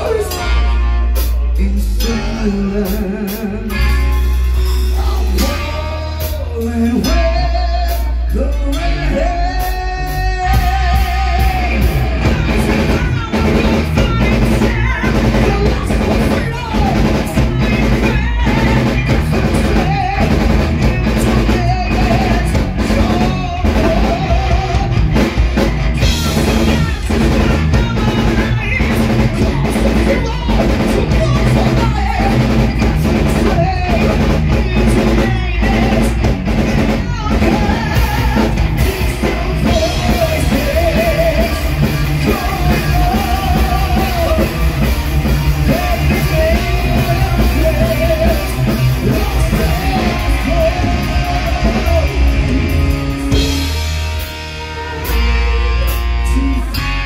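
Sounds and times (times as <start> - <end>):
heavy metal band playing: 0.0 - 57.0
man singing: 0.0 - 57.0.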